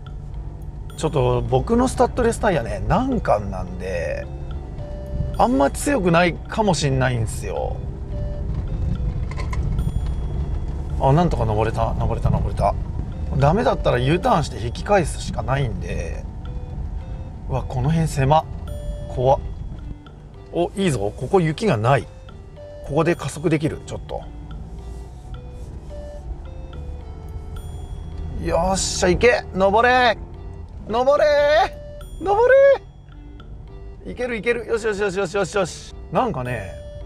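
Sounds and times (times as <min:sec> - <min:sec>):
car engine and tyres rumbling: 0:00.0 - 0:37.0
soft background music: 0:00.0 - 0:37.0.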